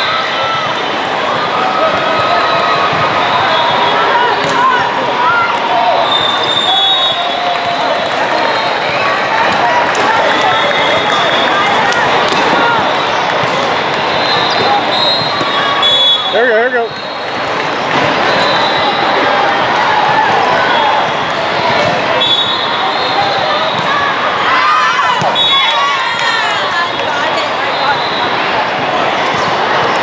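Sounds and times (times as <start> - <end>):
din of many voices: 0.0 - 30.0
volleyballs being hit and bouncing: 1.8 - 3.3, 4.2 - 6.6, 7.4 - 15.8, 19.2 - 22.2
referee whistle blasts: 3.2 - 4.1, 6.0 - 7.5, 14.2 - 17.4, 18.2 - 19.2, 22.2 - 23.9, 25.2 - 26.0.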